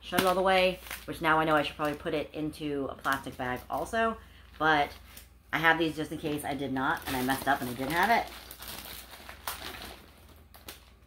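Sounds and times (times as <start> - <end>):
plastic bag rustling: 6.1 - 11.0.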